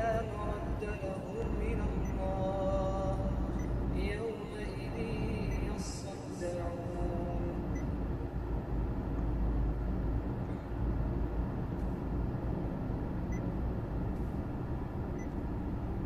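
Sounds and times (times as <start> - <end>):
car idling cabin rumble: 0.0 - 16.0
faint touchscreen beeps: 3.4 - 3.8, 7.7 - 8.0, 15.2 - 15.4.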